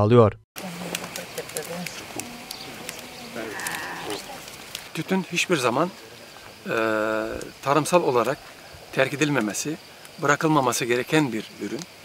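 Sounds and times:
faint high clicks: 0:00.8 - 0:05.0
animal call: 0:01.6 - 0:04.6.

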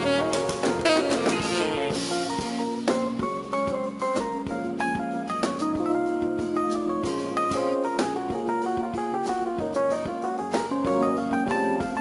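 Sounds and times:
saxophone: 0:00.0 - 0:04.0
drum kit with cymbals: 0:00.0 - 0:12.0.

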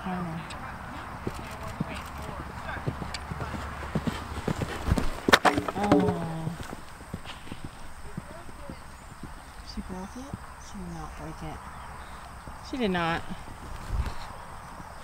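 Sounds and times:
hoofbeats on sand: 0:00.9 - 0:10.4.

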